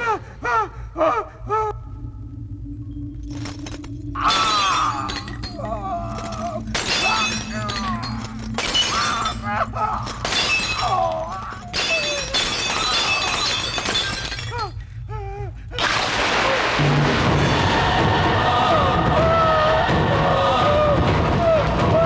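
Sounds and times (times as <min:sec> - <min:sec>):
low musical drone: 0:00.0 - 0:13.2.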